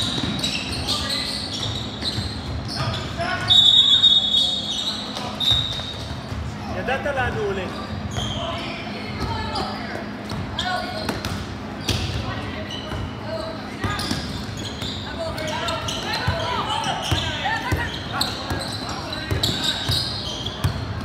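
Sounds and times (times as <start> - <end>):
basketball bouncing on court: 0.0 - 3.1, 9.2 - 13.2, 13.8 - 21.0.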